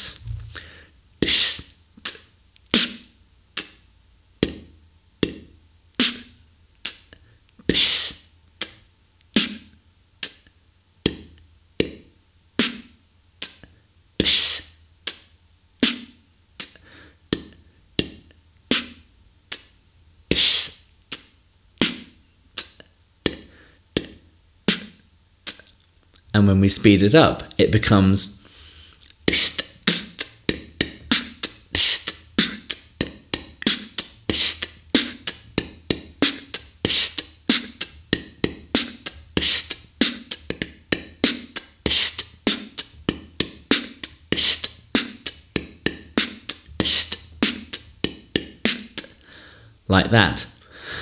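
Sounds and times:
person beatboxing: 0:00.0 - 0:03.8, 0:04.4 - 0:25.7, 0:26.7 - 0:49.2.

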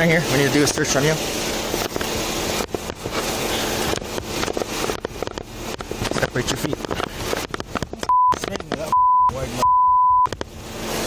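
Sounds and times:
rustling and crackling on microphone: 0:00.2 - 0:08.9.

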